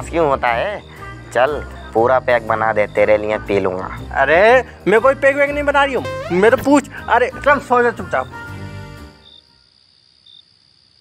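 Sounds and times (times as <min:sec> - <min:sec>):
cricket chirping: 0:00.0 - 0:05.0, 0:09.2 - 0:11.0
background music: 0:00.0 - 0:09.3.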